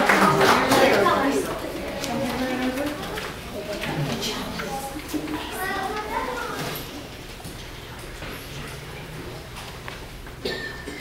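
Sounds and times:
children talking and calling out: 0:00.2 - 0:07.4.

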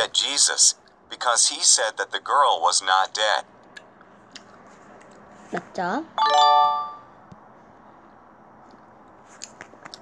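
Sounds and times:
bright electronic chime: 0:06.2 - 0:07.1.

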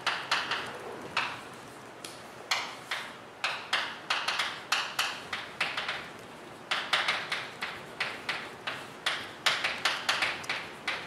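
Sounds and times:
chalk tapping and scraping on blackboard: 0:00.0 - 0:01.7, 0:02.5 - 0:11.0.

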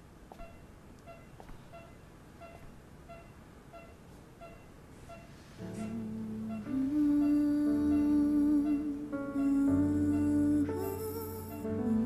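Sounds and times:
patient monitor beeping: 0:00.4 - 0:11.7.

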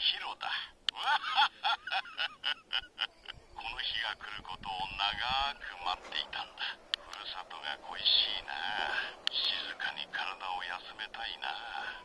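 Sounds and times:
man laughing: 0:00.9 - 0:03.7
man speaking: 0:03.4 - 0:12.0.

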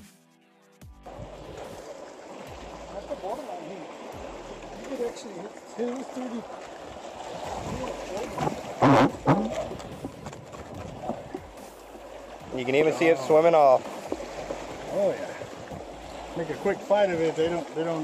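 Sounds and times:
wind: 0:00.9 - 0:18.0
water lapping against rocks: 0:01.0 - 0:18.0.

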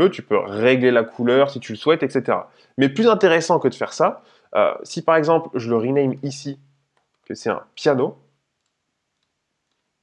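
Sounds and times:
man speaking: 0:00.0 - 0:06.7, 0:07.3 - 0:08.2.

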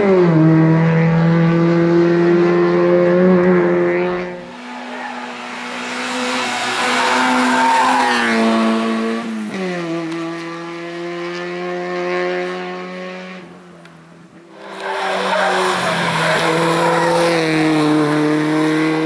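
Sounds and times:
car engine at high revs: 0:00.0 - 0:19.0.

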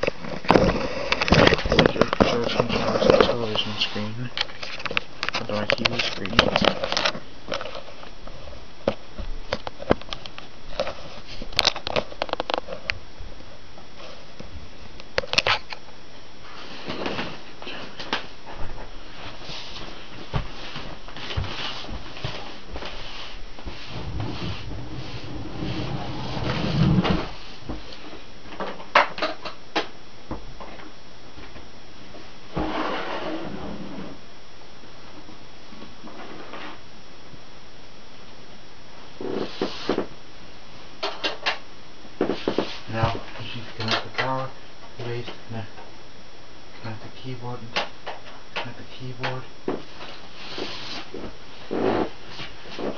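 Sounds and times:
steady background hiss: 0:00.0 - 0:52.9.

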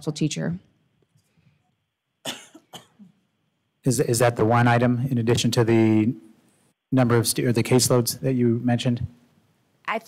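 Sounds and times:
person coughing: 0:02.2 - 0:03.2.

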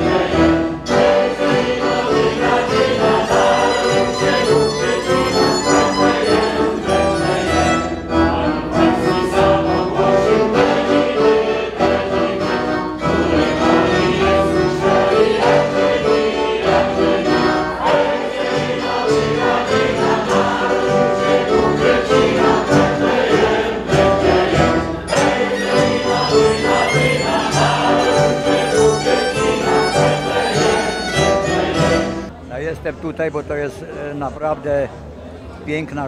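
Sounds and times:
violin: 0:00.0 - 0:10.8, 0:24.0 - 0:32.3
choir singing a carol: 0:00.0 - 0:32.3
accordion: 0:00.0 - 0:32.4
acoustic guitar: 0:00.0 - 0:32.6.

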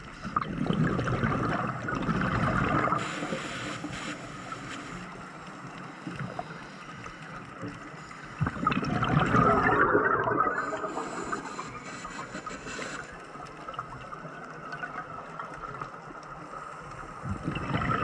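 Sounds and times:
gurgling exhaled bubbles: 0:00.0 - 0:03.5, 0:08.3 - 0:15.9, 0:17.1 - 0:18.0
scuba breathing underwater: 0:00.0 - 0:13.5
inhale hiss: 0:02.9 - 0:08.6, 0:10.5 - 0:13.5.

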